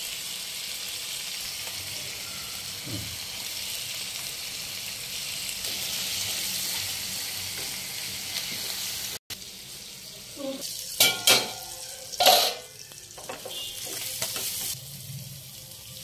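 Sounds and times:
chicken sizzling in a pan: 0.0s - 16.0s.

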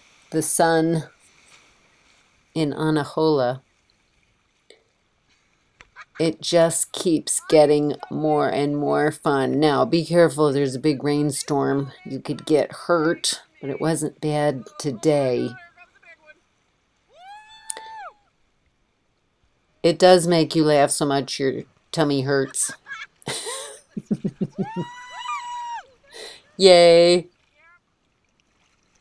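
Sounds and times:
woman's high vocal whoop: 17.1s - 18.2s, 24.6s - 25.9s.

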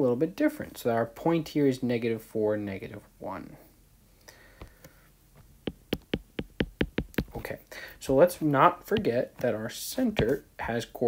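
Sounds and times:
stylus tapping on glass screen: 5.4s - 7.5s.

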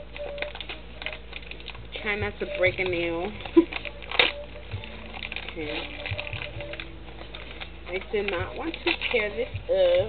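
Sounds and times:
faint music: 0.0s - 10.0s
fingernails scratching gift wrapping: 0.0s - 10.0s.

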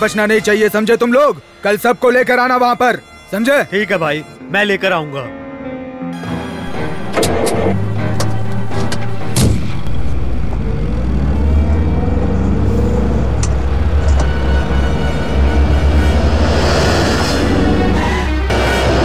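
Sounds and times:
deep low rumble: 9.4s - 19.0s.

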